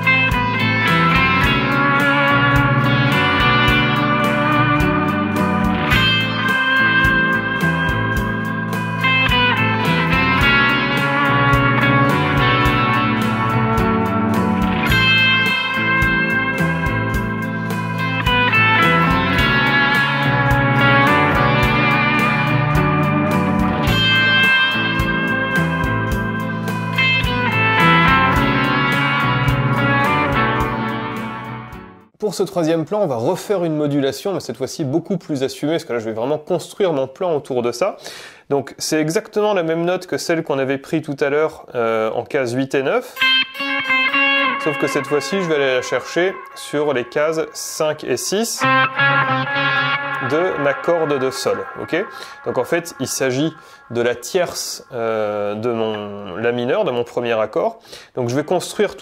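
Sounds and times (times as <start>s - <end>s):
steady beat: 0.0s - 31.9s, 48.6s - 55.0s
arpeggiated guitar and bass backing: 0.0s - 32.2s, 43.2s - 59.0s
electric guitar lead phrases: 0.0s - 32.2s, 43.1s - 59.0s.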